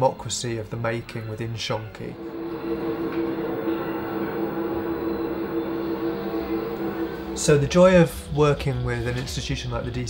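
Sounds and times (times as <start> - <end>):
low droning tones: 2.0 - 8.6
rumbling hiss: 2.1 - 8.4.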